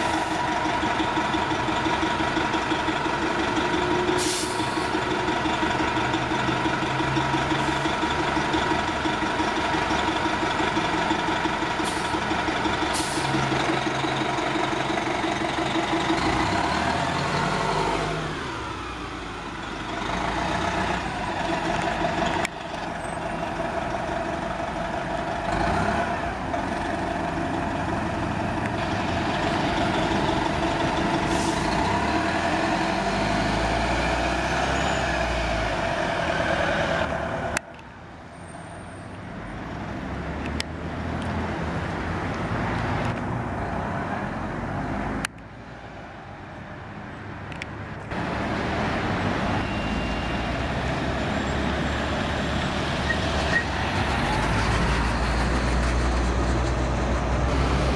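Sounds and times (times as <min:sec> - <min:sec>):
bus diesel engine droning: 0:00.0 - 0:39.9, 0:48.0 - 0:57.9
street traffic: 0:00.0 - 0:57.9.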